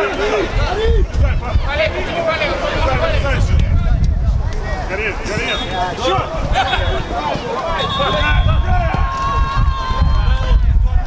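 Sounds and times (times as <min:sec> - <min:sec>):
players shouting: 0:00.0 - 0:03.5, 0:04.5 - 0:11.0.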